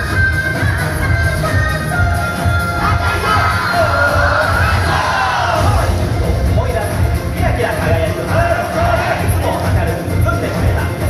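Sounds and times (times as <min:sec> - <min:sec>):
upbeat dance music over speakers: 0:00.0 - 0:11.0
group shouting: 0:02.8 - 0:05.9.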